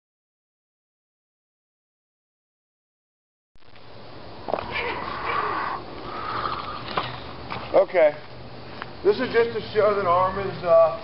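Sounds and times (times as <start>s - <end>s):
man talking: 9.0s - 11.0s.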